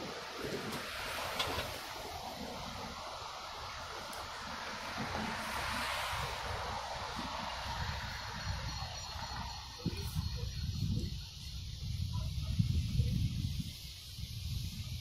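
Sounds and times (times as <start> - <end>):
vehicle passing: 0.0 - 10.8
wind buffeting microphone: 0.0 - 15.0.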